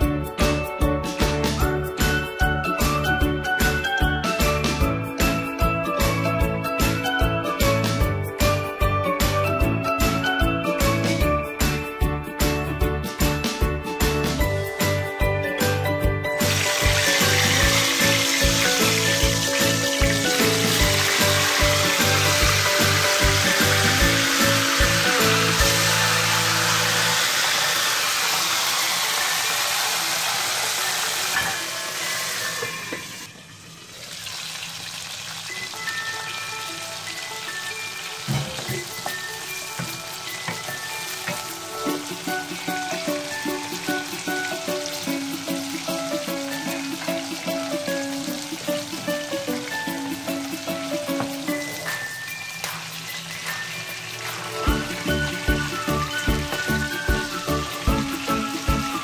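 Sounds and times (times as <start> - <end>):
background music: 0.0 - 34.0, 34.9 - 59.0
okra sizzling in hot oil: 16.4 - 59.0.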